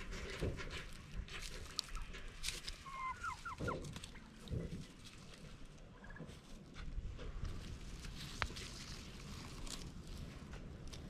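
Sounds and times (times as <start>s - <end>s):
faint rustling: 0.0s - 11.0s
turkeys calling: 1.7s - 6.8s.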